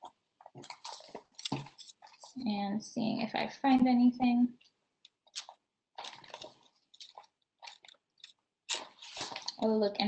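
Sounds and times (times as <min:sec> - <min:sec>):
magazine pages flipping: 0:00.5 - 0:02.4, 0:05.3 - 0:09.6.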